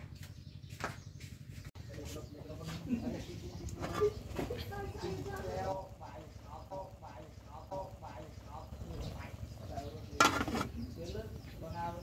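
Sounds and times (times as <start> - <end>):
pot boiling on wood fire: 1.7 - 12.0
metal pot lid clattering: 10.2 - 10.7.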